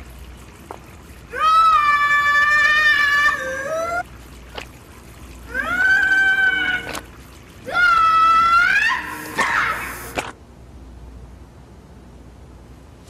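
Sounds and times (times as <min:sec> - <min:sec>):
woman screaming: 0:01.3 - 0:04.0, 0:05.5 - 0:07.0, 0:07.6 - 0:10.1.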